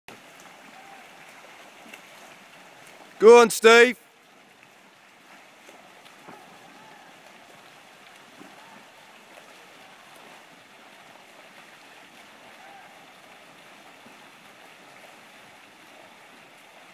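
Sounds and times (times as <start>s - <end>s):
swimmers splashing in water: 0.1s - 16.9s.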